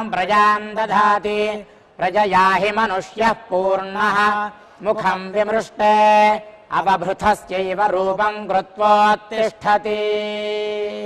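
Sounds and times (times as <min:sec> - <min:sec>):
man chanting a mantra: 0:00.0 - 0:11.0.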